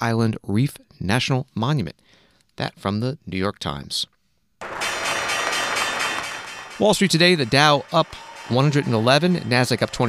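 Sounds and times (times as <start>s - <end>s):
bell ringing: 4.6s - 10.0s.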